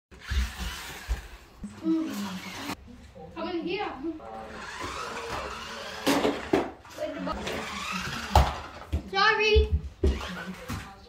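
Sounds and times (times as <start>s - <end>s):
toy car motor whirring: 0.2s - 2.8s, 4.4s - 8.8s.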